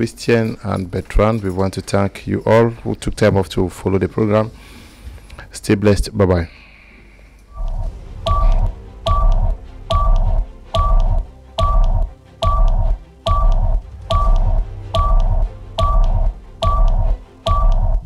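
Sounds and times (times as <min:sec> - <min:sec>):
countdown music with deep thumps: 0:07.6 - 0:18.0
short electronic beep: 0:08.3 - 0:18.0.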